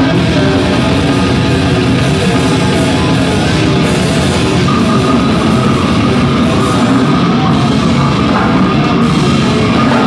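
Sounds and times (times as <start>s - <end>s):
live metal band playing: 0.0s - 10.0s.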